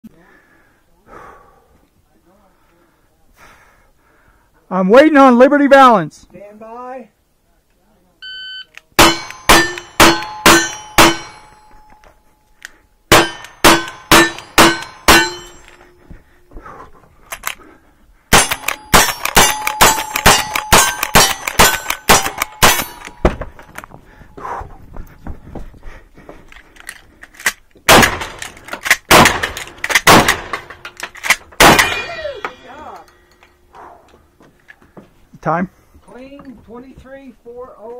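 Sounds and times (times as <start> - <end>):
rifle shots: 9.0 - 11.4, 13.1 - 15.6, 18.3 - 23.2, 27.9 - 32.2
steel target ringing: 9.0 - 12.2, 13.1 - 16.0, 18.3 - 23.4, 31.6 - 33.7
heavy gunshots: 18.3 - 23.4, 27.9 - 30.7, 31.6 - 32.1.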